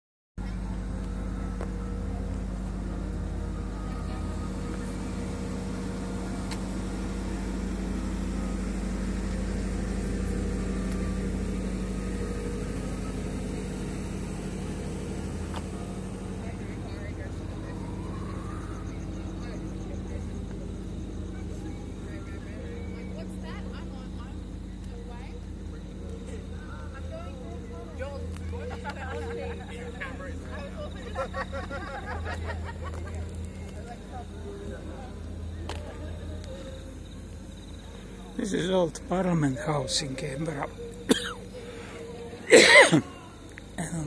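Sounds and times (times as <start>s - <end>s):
constant hum: 0.4s - 44.0s
faint voices: 0.4s - 44.0s
traffic rumble: 0.4s - 44.0s.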